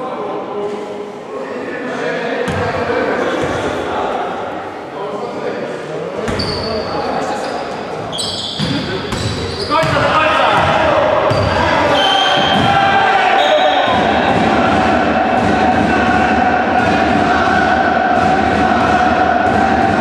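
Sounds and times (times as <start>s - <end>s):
sneakers squeaking: 6.2s - 14.2s
players calling out: 6.2s - 20.0s
ball bouncing on wooden court: 8.6s - 11.6s.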